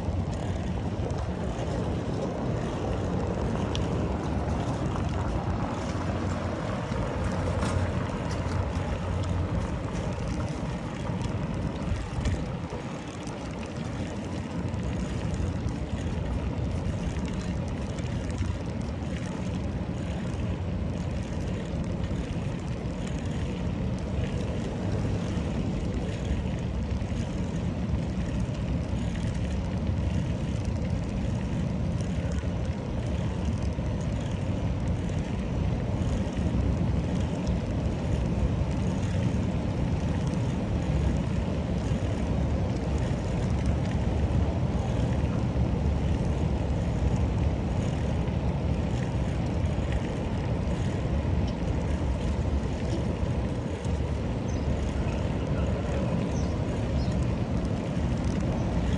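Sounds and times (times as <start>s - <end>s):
bicycle tyres on brick paving: 0.0s - 58.9s
wind buffeting microphone: 0.0s - 58.9s.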